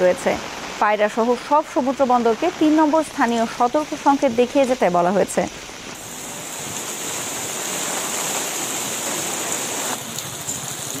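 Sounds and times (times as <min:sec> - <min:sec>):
heavy rain on wet street: 0:00.0 - 0:11.0.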